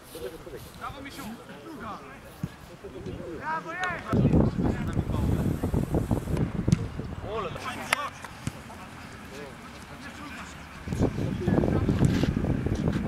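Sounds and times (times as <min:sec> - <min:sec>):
wind buffeting microphone: 0:04.1 - 0:07.6, 0:10.8 - 0:13.0.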